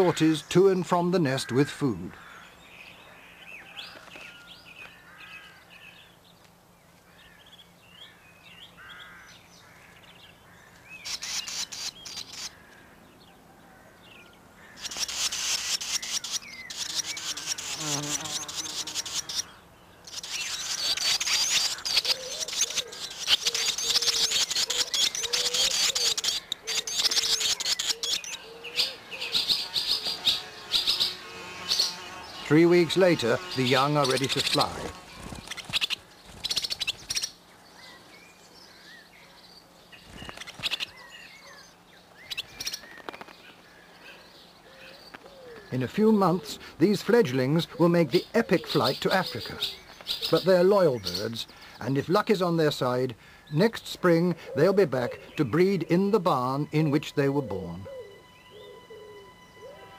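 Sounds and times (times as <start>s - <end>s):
nestlings chirping and calling: 8.6s - 59.9s.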